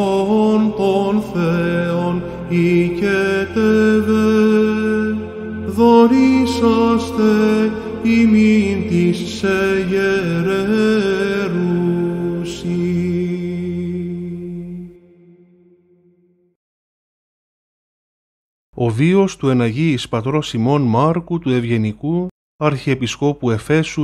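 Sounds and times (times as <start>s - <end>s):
man chanting: 0.0s - 15.0s.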